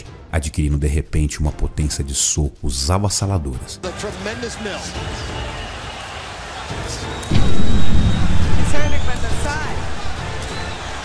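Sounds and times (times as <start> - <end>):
deep bass boom: 7.3 - 10.6.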